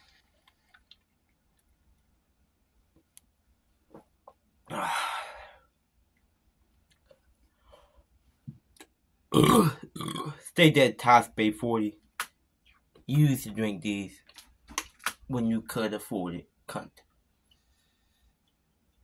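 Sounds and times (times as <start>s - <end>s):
man burping: 9.3s - 10.4s
man clearing throat: 9.4s - 10.4s.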